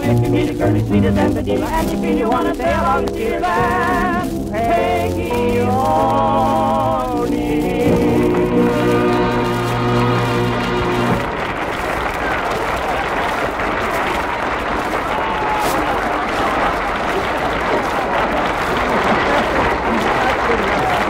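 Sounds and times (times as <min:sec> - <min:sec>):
audience applauding: 0:00.0 - 0:21.0.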